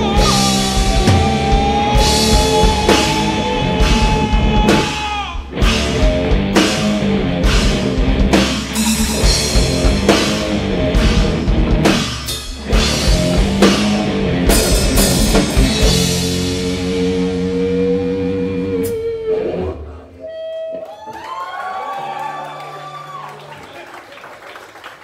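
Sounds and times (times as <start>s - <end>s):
rock band playing: 0.0s - 20.9s
drum crashes: 0.6s - 6.8s.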